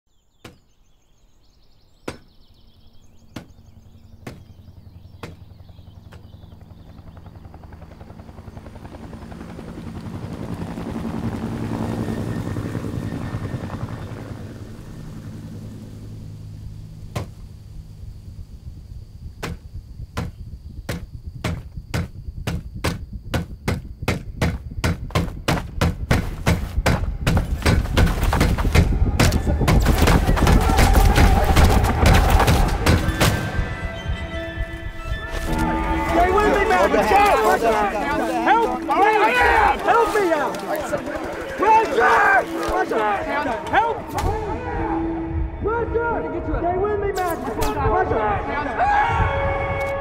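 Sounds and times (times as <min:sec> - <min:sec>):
low drone: 0:02.6 - 0:21.3, 0:30.3 - 0:50.0
helicopter rotor thumps: 0:03.2 - 0:11.4, 0:17.0 - 0:17.6, 0:19.2 - 0:44.4.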